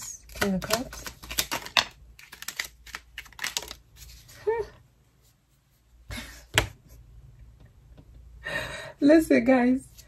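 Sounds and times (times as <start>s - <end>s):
cards being shuffled: 0.0s - 4.4s.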